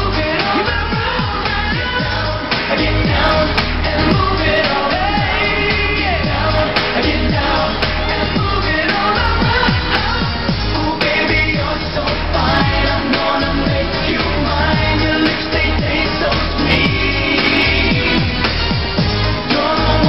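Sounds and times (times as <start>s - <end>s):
male vocal group singing: 0.0s - 20.0s.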